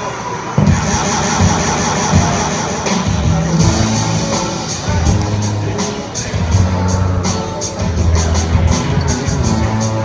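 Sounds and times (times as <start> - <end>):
drum hits: 0.6 - 6.9
bass guitar notes: 0.6 - 10.0
live rock band: 0.6 - 10.0.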